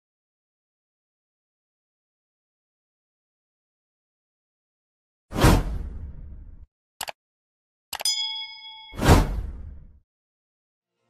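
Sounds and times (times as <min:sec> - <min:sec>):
bell-like notification ding: 0:08.0 - 0:09.2.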